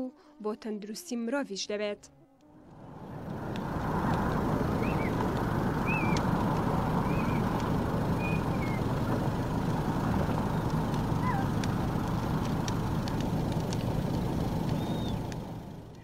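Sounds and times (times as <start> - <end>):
steady rushing outdoor noise: 2.6 - 16.0
faint clicks: 3.0 - 16.0.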